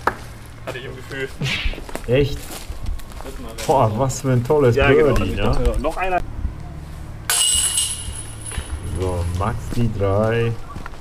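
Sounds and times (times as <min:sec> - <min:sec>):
disc hitting metal chains: 0:07.3 - 0:08.9.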